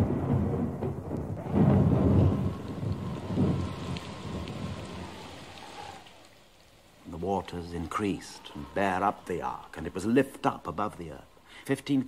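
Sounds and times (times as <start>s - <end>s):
thunder rumbling: 0.0s - 11.4s
rain: 0.0s - 12.0s.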